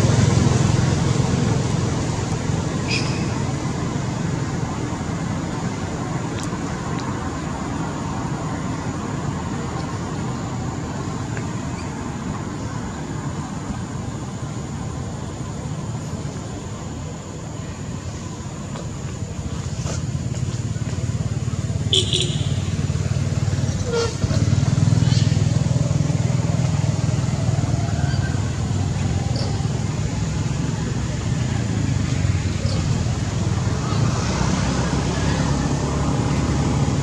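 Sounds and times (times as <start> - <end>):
motorbike engines: 0.0 - 37.0
road traffic rumble: 0.0 - 37.0.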